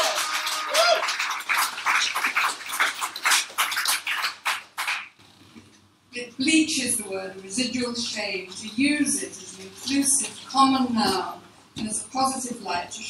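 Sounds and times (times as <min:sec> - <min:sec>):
whooping cheer: 0:00.0 - 0:01.4
audience applauding: 0:00.0 - 0:05.2.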